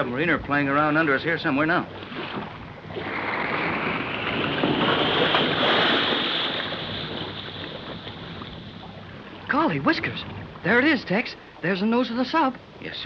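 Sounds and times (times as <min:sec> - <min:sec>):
rushing water: 0:00.0 - 0:13.0.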